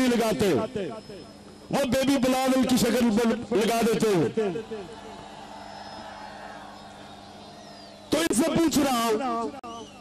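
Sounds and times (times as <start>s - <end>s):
public-address system hum and hiss: 0.0s - 10.0s.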